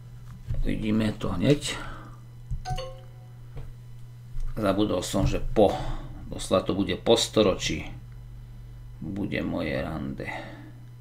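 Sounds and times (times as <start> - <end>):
steady low hum: 0.0 - 11.0
descending wrong-answer tones: 2.7 - 3.4.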